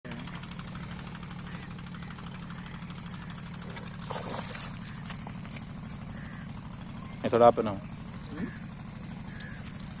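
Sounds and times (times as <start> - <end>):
motor humming: 0.1 - 10.0.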